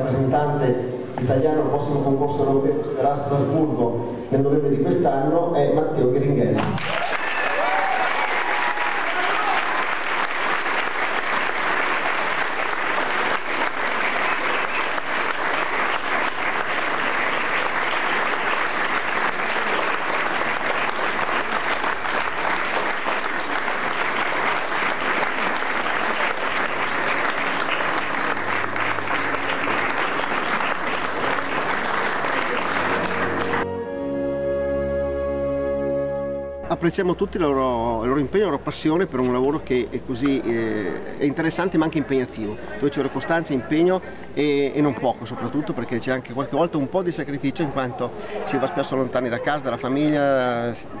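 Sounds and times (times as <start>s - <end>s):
crowd applauding: 6.6s - 33.7s.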